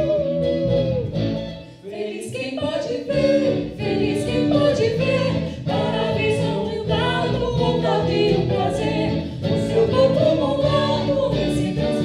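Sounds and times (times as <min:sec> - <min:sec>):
acoustic guitar: 0:00.0 - 0:12.0
group singing: 0:01.8 - 0:12.0.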